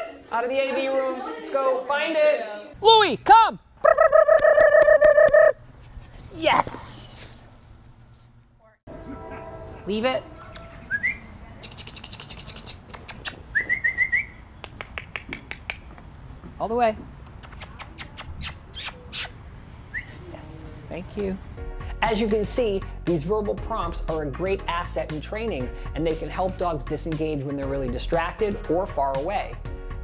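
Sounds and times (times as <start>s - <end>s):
mouth clicks: 11.6s - 16.0s, 17.2s - 19.4s.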